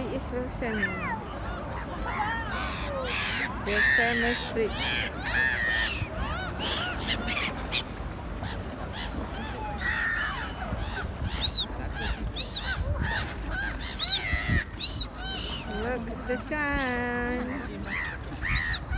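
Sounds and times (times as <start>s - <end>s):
gulls calling: 0.2s - 18.9s.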